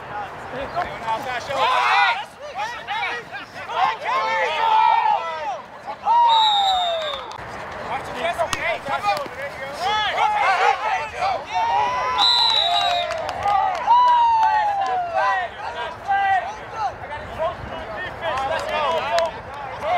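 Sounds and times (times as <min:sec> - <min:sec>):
people shouting and calling out: 0:00.0 - 0:07.4, 0:08.1 - 0:19.9
referee's whistle blasts: 0:06.2 - 0:07.4, 0:12.1 - 0:13.1.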